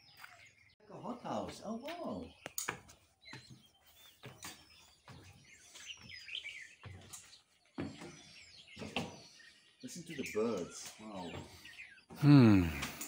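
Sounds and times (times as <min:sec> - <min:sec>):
birds chirping: 0:00.0 - 0:13.0
footsteps on wooden stairs: 0:01.4 - 0:09.2.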